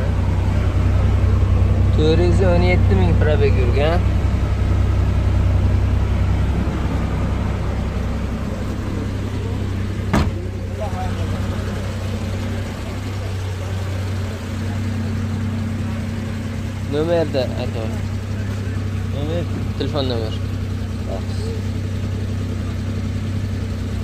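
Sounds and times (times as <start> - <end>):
car engine idling: 0.0 - 24.0
sharp knock: 10.1 - 10.4.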